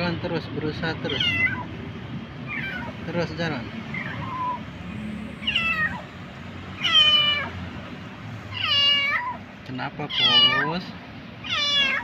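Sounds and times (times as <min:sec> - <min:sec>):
kitten meowing: 0:01.0 - 0:01.8, 0:02.4 - 0:03.1, 0:03.9 - 0:04.7, 0:05.4 - 0:06.1, 0:06.8 - 0:07.6, 0:08.5 - 0:09.4, 0:10.0 - 0:10.8, 0:11.4 - 0:12.0.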